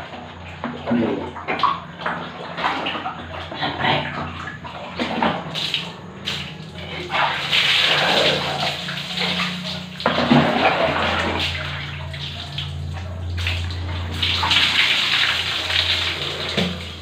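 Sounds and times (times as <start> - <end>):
water splashing on concrete floor: 0.0 - 17.0
low hum: 2.0 - 17.0.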